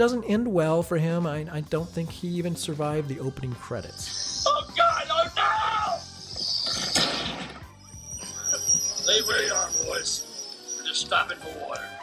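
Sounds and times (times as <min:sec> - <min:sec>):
background music: 0:00.0 - 0:12.0
sharp crash: 0:06.8 - 0:07.6.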